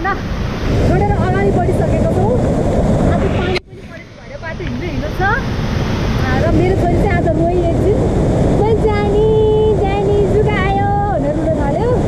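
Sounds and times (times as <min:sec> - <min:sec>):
voices: 0:00.0 - 0:12.0
waterfall and river rushing: 0:00.0 - 0:12.0
wind buffeting microphone: 0:00.0 - 0:12.0.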